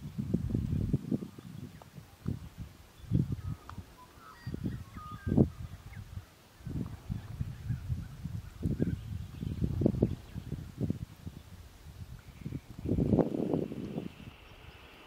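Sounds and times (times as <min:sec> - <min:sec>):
wind buffeting microphone: 0:00.0 - 0:15.0
faint birds chirping: 0:00.1 - 0:15.0.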